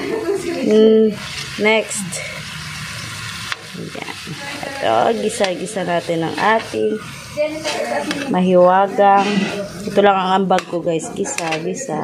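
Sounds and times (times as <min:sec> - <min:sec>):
garlic and onion sizzling: 0:00.0 - 0:12.0
metal spoon stirring in wok: 0:01.2 - 0:11.6.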